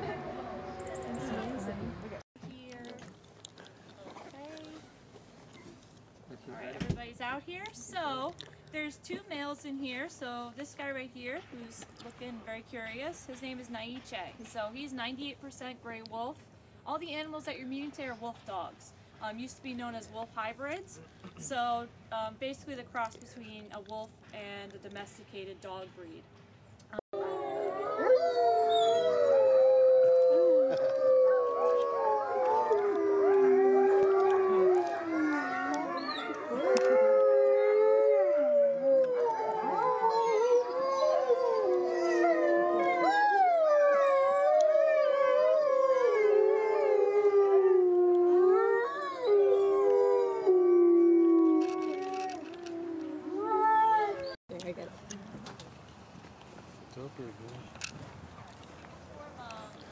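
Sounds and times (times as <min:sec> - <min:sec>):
wolfdogs howling in chorus: 0:27.2 - 0:54.3.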